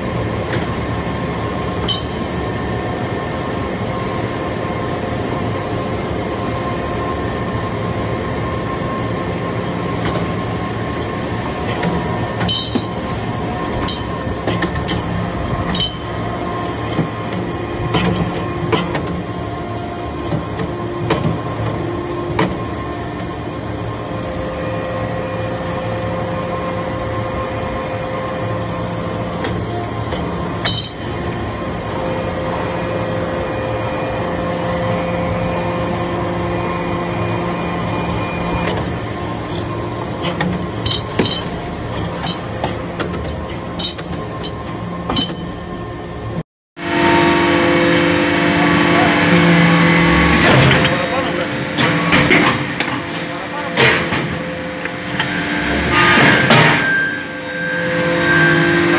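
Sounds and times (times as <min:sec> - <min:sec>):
hydraulic pump hum: 0:46.8 - 0:58.9.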